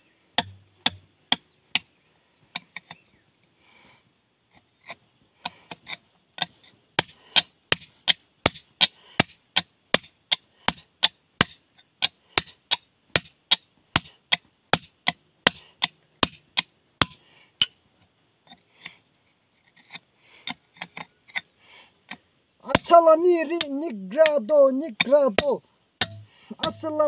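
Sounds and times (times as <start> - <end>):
hammer striking steel chisel on stone: 0.4 - 1.9, 25.0 - 27.0.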